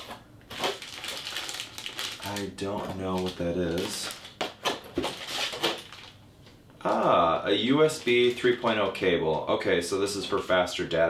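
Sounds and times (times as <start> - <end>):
plastic bag rustling: 0.0 - 6.2, 7.5 - 9.4.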